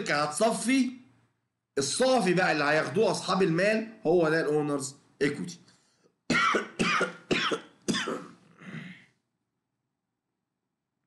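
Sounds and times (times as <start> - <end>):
man coughing: 6.3 - 9.1.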